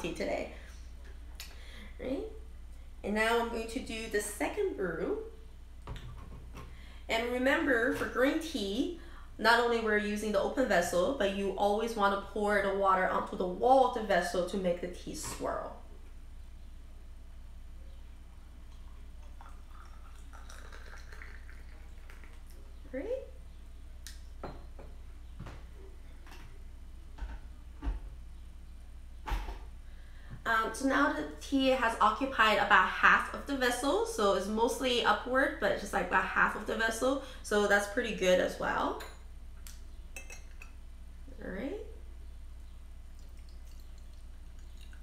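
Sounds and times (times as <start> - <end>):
hot water pouring into glass: 18.7 - 22.5
glass and porcelain clinks: 40.2 - 40.7.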